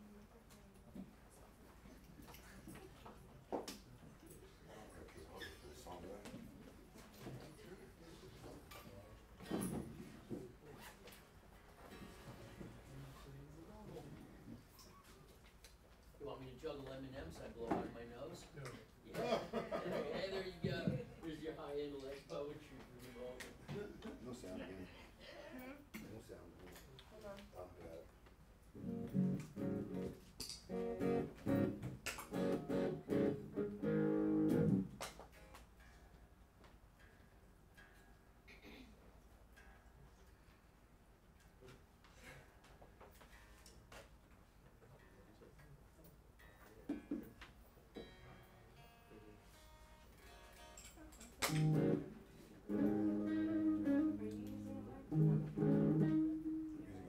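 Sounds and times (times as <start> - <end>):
electric guitar plucked notes: 28.8 - 35.0, 51.5 - 57.0.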